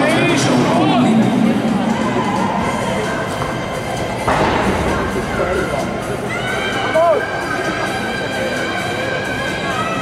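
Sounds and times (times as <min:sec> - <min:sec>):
arena hall noise: 0:00.0 - 0:10.0
background music: 0:00.0 - 0:10.0
thud: 0:04.2 - 0:06.4.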